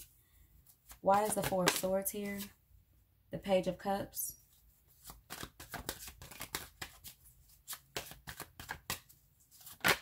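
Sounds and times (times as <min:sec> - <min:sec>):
cards being shuffled: 0:00.6 - 0:02.5, 0:04.9 - 0:10.0.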